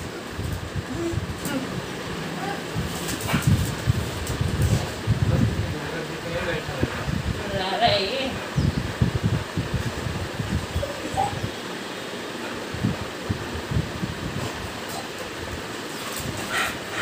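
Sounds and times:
dog panting: 0:16.0 - 0:17.0.

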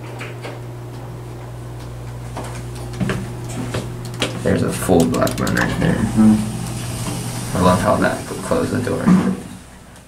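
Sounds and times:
low electrical hum: 0:00.0 - 0:10.0
door equipment clicks and clunks: 0:02.9 - 0:06.0
elevator door sliding: 0:03.3 - 0:10.0.

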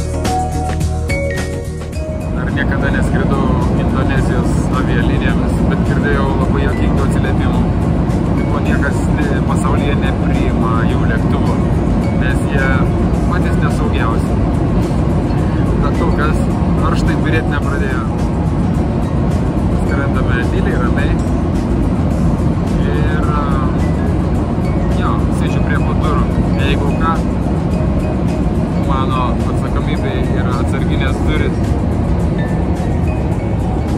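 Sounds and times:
airliner cabin roar: 0:00.0 - 0:33.9
music: 0:00.0 - 0:33.9.

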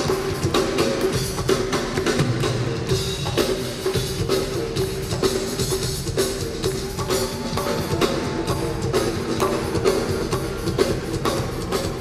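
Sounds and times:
drum kit groove: 0:00.0 - 0:12.0.

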